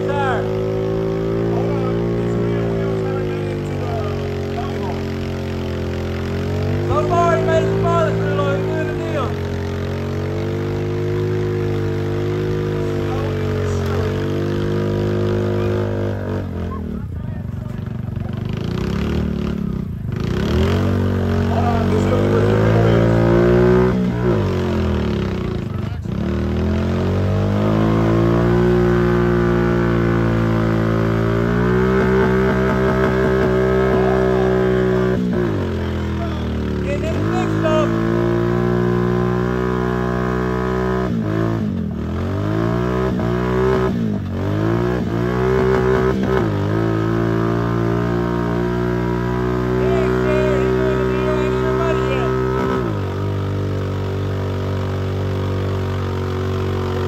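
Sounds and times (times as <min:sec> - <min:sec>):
atv engine revving under load: 0:00.0 - 0:57.0.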